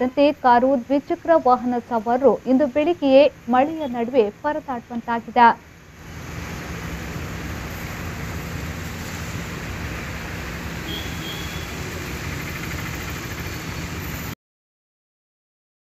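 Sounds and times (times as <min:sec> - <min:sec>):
traffic on a wet road: 0:05.8 - 0:14.4.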